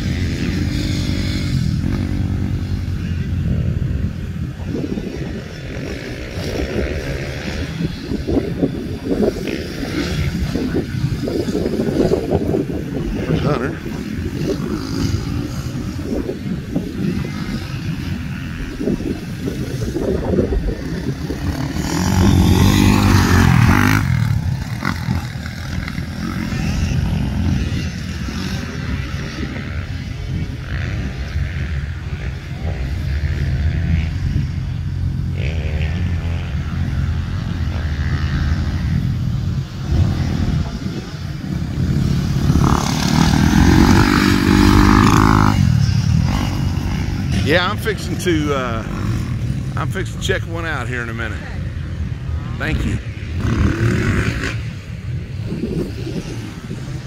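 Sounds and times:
dirt bike engines revving: 0:00.0 - 0:57.0
dirt bike passing by: 0:00.0 - 0:57.0.

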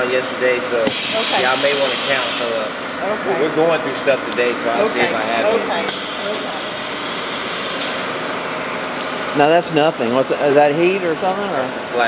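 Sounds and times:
low machine hum: 0:00.0 - 0:12.0
machinery rushing hiss: 0:00.8 - 0:02.7, 0:05.9 - 0:08.2.

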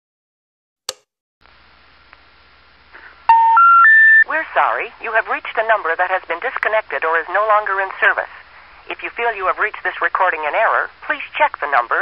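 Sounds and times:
rising telephone tone beeps: 0:03.3 - 0:04.3.

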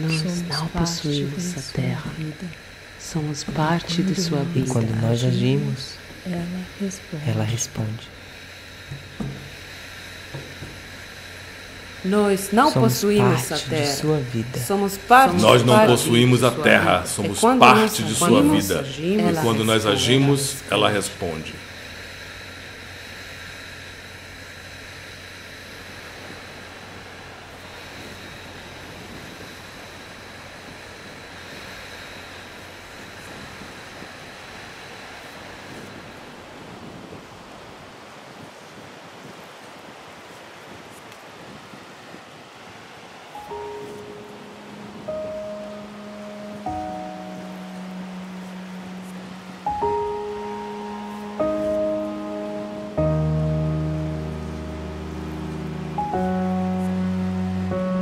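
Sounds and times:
slow music of held notes: 0:03.8 - 0:05.9, 0:11.7 - 0:14.2, 0:15.1 - 0:21.0, 0:43.3 - 0:58.0
small waves washing onto shore: 0:33.0 - 0:45.4.

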